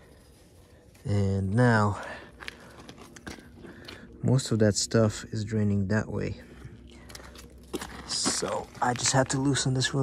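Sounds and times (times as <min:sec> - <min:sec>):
handling clicks and rustles: 0:06.8 - 0:10.0.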